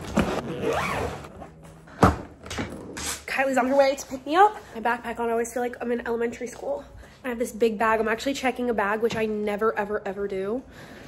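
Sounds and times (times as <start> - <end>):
suitcase zipper closing: 0.0 - 1.6.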